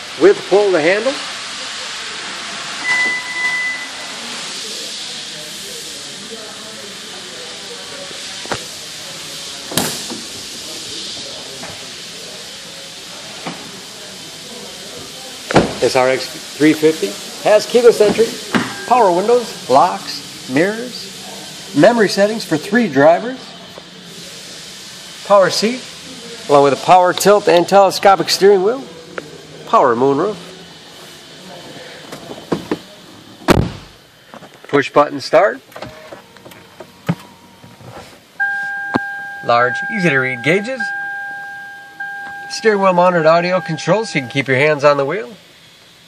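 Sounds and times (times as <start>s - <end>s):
steady background hiss: 0.0s - 46.0s
car door thump: 15.5s - 15.8s, 33.5s - 33.9s.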